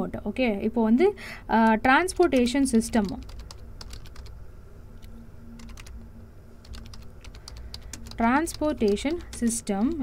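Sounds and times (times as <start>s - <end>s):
keyboard typing clicks: 1.6s - 4.3s, 5.0s - 6.0s, 6.6s - 10.0s.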